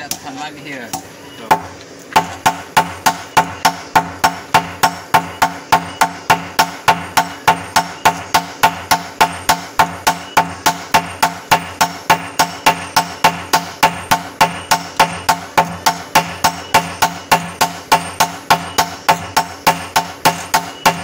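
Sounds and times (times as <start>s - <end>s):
hammers striking steel on anvil: 0.0s - 21.0s.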